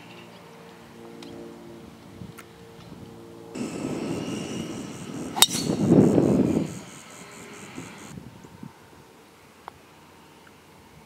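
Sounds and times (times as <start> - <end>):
wind rumbling on microphone: 2.1 - 8.9
faint high hiss: 3.6 - 8.2.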